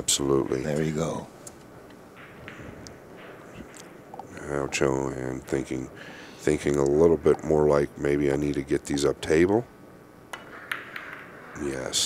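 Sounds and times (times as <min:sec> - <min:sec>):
faint steady hiss: 0:00.0 - 0:10.6
soft distant sounds: 0:00.0 - 0:12.0.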